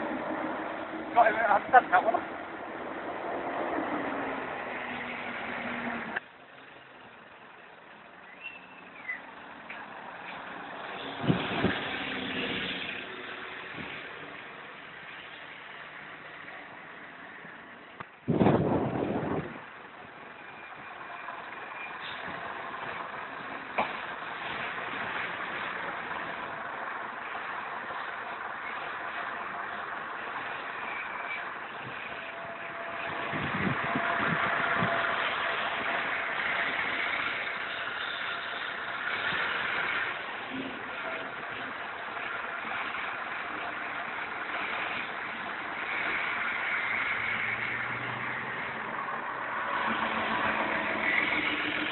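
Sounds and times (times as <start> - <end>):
bus engine passing close by: 0.0 - 51.9
diesel buses running: 0.0 - 51.9.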